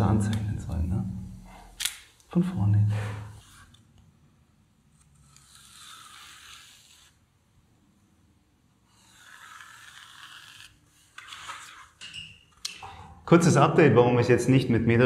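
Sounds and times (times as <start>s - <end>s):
pencil scraping: 3.0s - 3.8s, 4.9s - 7.4s, 8.8s - 12.0s.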